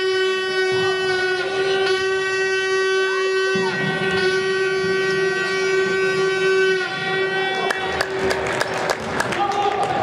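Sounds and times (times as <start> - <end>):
loud horn blast: 0.0 - 8.3
low crowd noise: 0.0 - 10.0.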